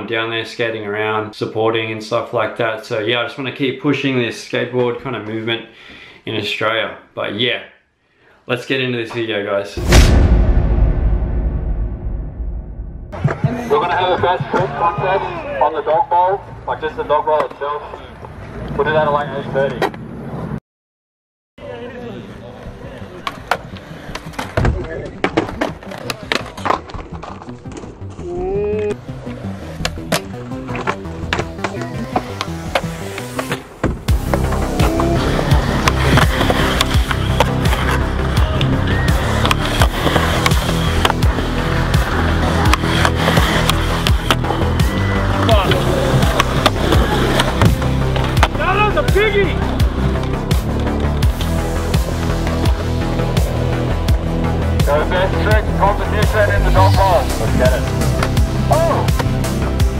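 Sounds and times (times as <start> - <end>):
skateboards rolling on concrete: 21.7 - 54.1
music track: 28.4 - 59.9
skateboard clacks: 39.3 - 44.6.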